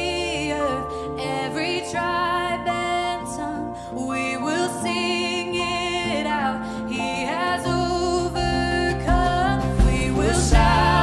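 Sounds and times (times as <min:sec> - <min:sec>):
acoustic guitar: 0:00.0 - 0:11.0
person singing: 0:00.0 - 0:11.0
electric guitar: 0:06.0 - 0:11.0.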